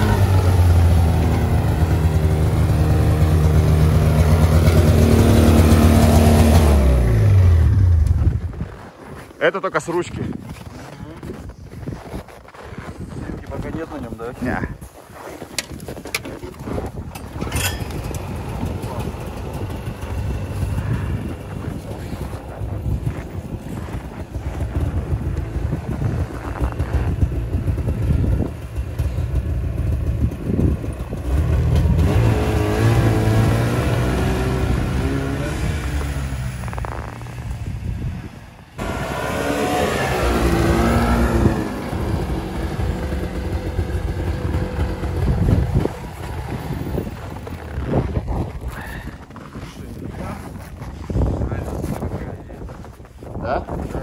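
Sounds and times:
snowmobile engine revving: 0.0 - 8.3, 17.6 - 50.4.

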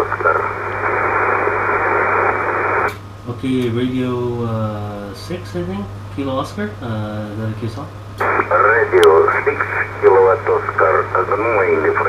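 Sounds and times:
radio band noise hiss: 0.0 - 3.0, 8.2 - 12.0.

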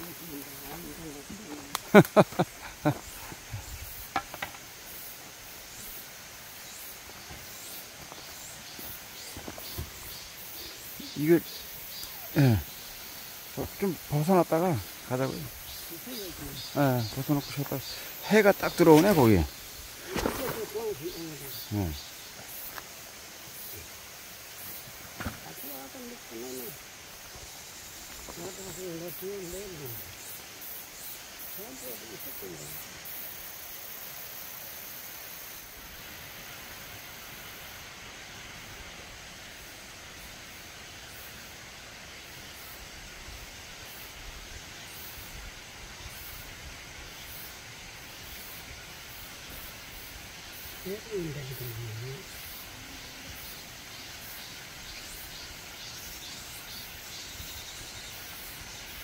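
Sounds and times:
outdoor background hiss: 0.0 - 59.0
backpack and clothing rustling: 20.0 - 21.6
quiet low-voiced talk: 50.8 - 53.4.

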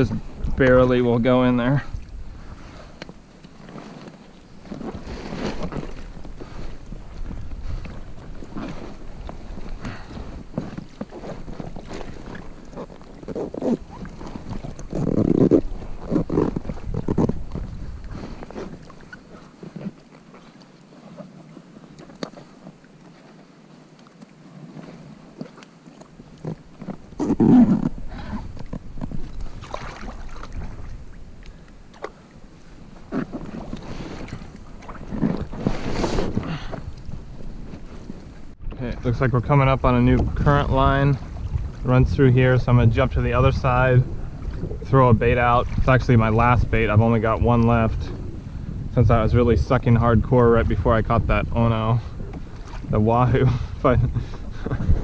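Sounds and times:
wind on microphone: 0.0 - 20.1, 26.4 - 55.0
water splashing around kayak: 0.0 - 55.0.

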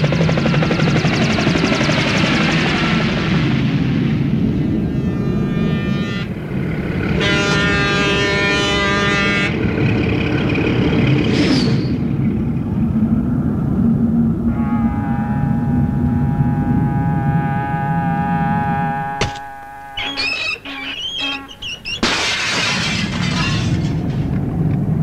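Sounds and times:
steady low rumble: 0.0 - 20.1
horn blasts: 4.4 - 10.2, 14.4 - 22.0
brief rising squeal: 4.8 - 6.5, 14.9 - 22.0.

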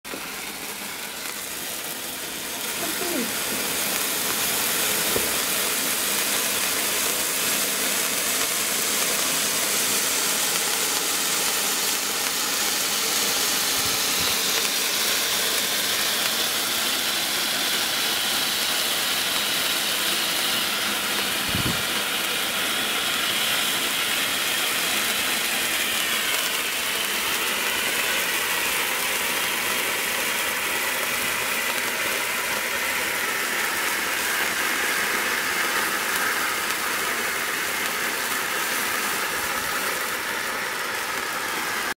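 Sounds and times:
cake fountains spraying hiss: 0.1 - 41.9.

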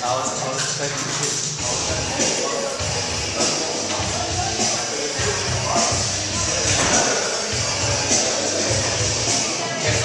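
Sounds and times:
music with deep bass pulses: 0.0 - 10.0.

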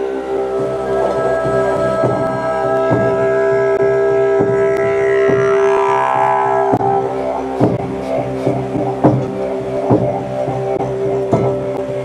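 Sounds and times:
didgeridoo drone: 0.0 - 12.0.

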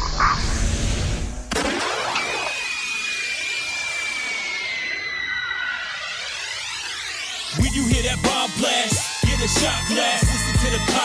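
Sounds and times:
high tone gliding downward: 1.8 - 9.2
swirling hissing electronic texture: 3.1 - 9.2.

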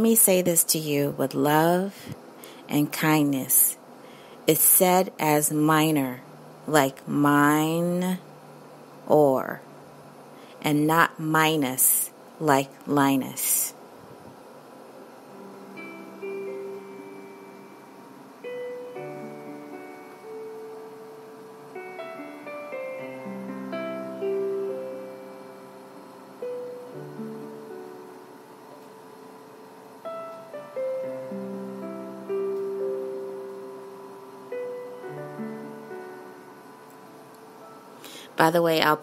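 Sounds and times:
slow quiet piano music: 15.3 - 38.2.

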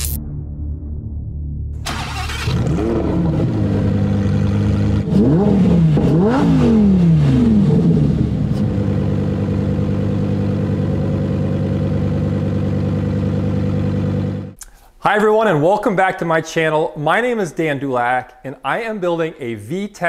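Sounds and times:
sports car engine idling and revving: 2.4 - 14.6.

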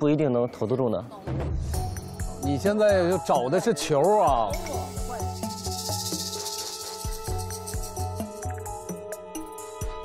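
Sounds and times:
background music with low beat: 1.3 - 10.0.

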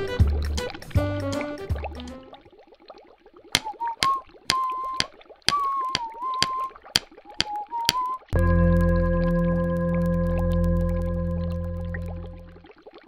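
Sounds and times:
faint bubbling: 0.0 - 13.0
cartoon pings: 3.6 - 6.7
wavering whistle-like tone: 3.6 - 12.6.

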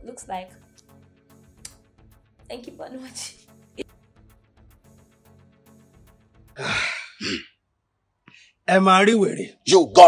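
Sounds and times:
heavy breathy sigh: 6.6 - 7.4.

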